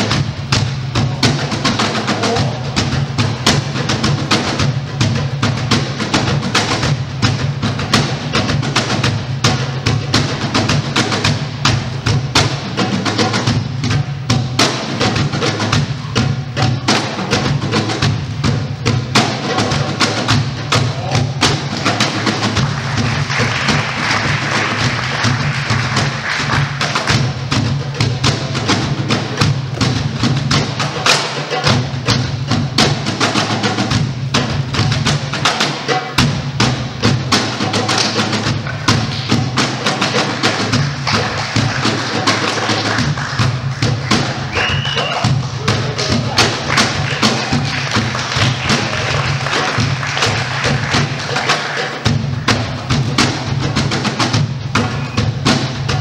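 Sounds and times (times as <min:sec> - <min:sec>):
hand percussion music: 0:00.0 - 0:56.0.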